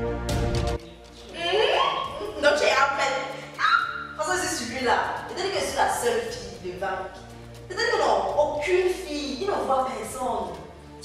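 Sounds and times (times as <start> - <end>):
women talking animatedly: 1.3 - 7.0.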